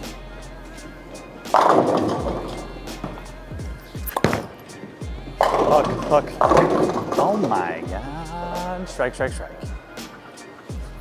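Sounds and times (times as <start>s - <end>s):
background music: 0.0s - 11.0s
bowling ball rolling on wooden lane: 0.8s - 7.8s
bowling ball crashing into pins: 1.1s - 7.8s
pins falling with low thuds: 1.5s - 4.6s, 5.4s - 7.6s.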